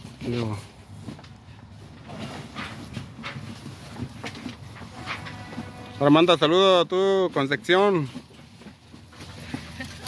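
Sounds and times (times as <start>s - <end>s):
footsteps on grass: 0.0s - 6.2s.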